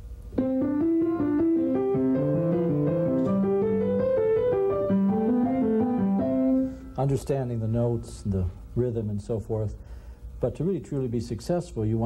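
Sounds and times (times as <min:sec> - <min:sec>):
piano playing: 0:00.3 - 0:08.5.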